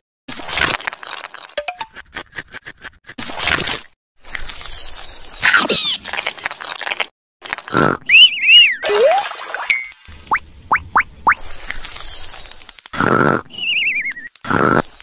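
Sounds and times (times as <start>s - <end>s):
rising whistle-like tone: 8.2s - 10.0s.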